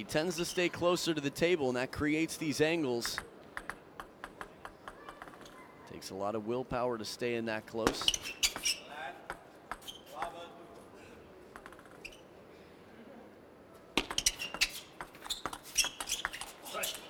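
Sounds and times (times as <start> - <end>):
table tennis ball rally: 3.0 - 5.7, 7.8 - 10.4, 11.5 - 12.2, 14.0 - 17.0.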